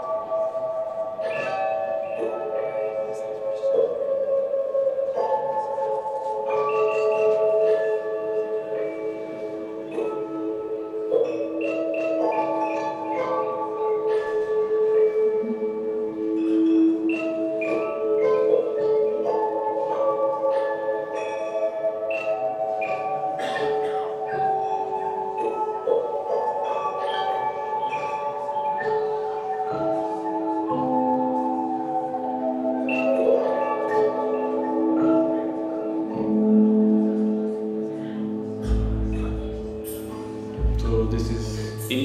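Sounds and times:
electronic music with bell-like tones: 0:00.0 - 0:42.0.

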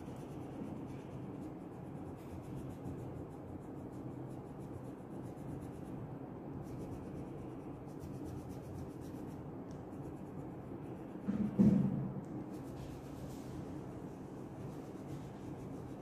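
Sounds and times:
crayon rubbing on paper: 0:00.0 - 0:11.0, 0:14.5 - 0:16.0.

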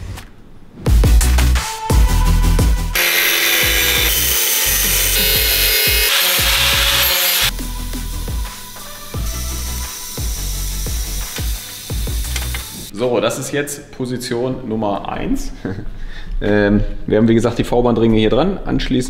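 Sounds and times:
angle grinder cutting metal: 0:03.0 - 0:08.2, 0:09.2 - 0:12.9.

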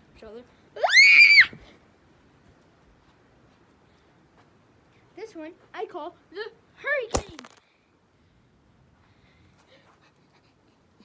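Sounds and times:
child screaming: 0:00.8 - 0:01.6.

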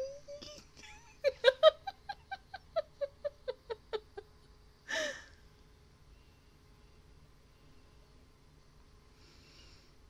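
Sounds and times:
woman laughing: 0:00.0 - 0:05.2.

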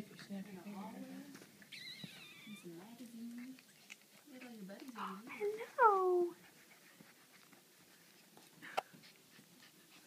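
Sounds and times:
puppy whining: 0:01.6 - 0:02.8.

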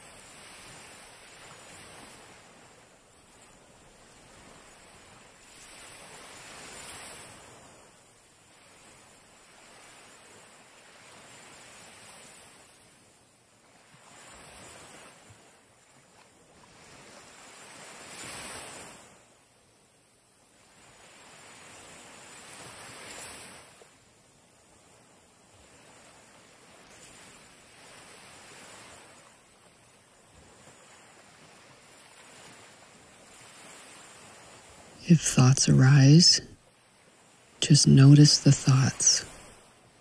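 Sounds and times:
small waves on sandy shore: 0:00.0 - 0:40.0.

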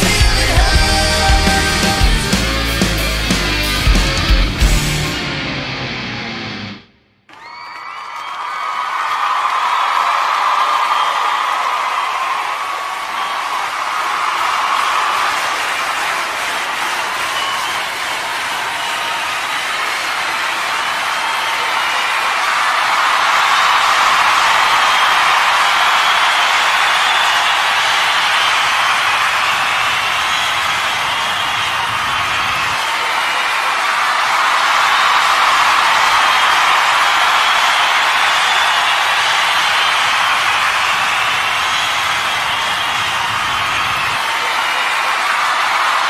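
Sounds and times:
crowd cheering and whooping: 0:00.0 - 0:06.7, 0:07.3 - 0:46.0.

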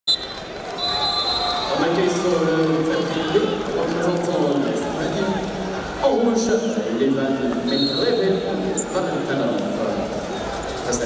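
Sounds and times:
referee's whistle: 0:00.1 - 0:01.8, 0:07.7 - 0:08.2
arena crowd hubbub: 0:00.1 - 0:11.0
man commentating: 0:01.6 - 0:10.1.

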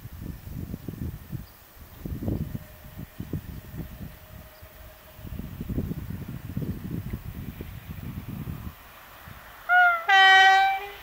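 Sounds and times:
two-tone locomotive air horn: 0:09.7 - 0:11.0.

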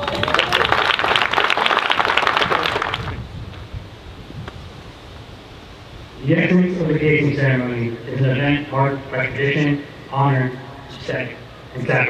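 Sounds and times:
audience clapping: 0:00.0 - 0:03.2
faint outdoor background: 0:00.0 - 0:12.0.

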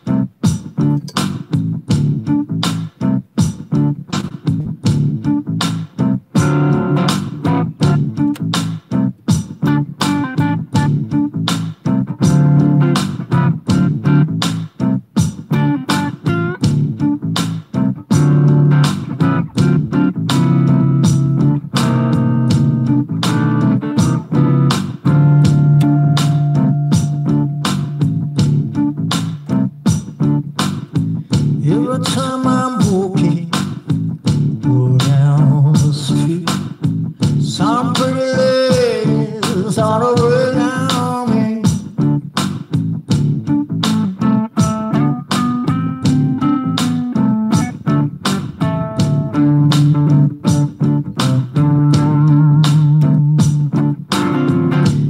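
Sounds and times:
bent wavering guitar lead notes: 0:00.0 - 0:30.6, 0:37.4 - 0:42.3, 0:43.2 - 0:55.0
bass line: 0:00.0 - 0:55.0
blues electric guitar: 0:00.0 - 0:55.0
looped percussion beat: 0:00.0 - 0:55.0.

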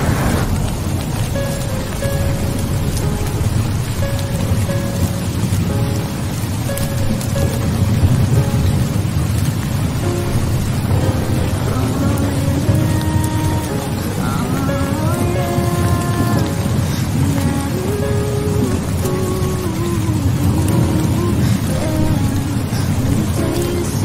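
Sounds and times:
heavy rain: 0:00.0 - 0:24.0
thunder rumbling: 0:00.0 - 0:24.0.

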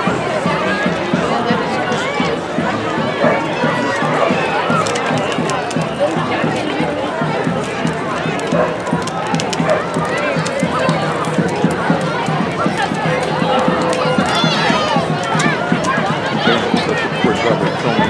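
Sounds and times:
crowd babble: 0:00.0 - 0:18.0.

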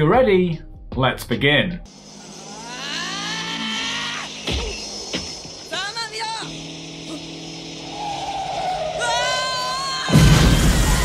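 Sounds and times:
motorcycle engine whining: 0:01.9 - 0:11.0.

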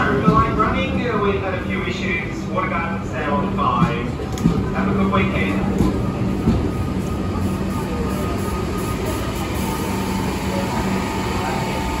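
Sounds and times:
electric train humming: 0:00.0 - 0:12.0
passengers chattering: 0:00.0 - 0:12.0.

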